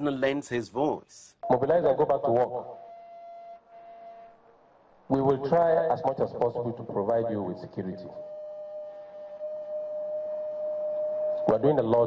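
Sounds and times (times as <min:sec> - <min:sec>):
microphone feedback ringing tone: 0:01.4 - 0:04.7, 0:07.5 - 0:12.0.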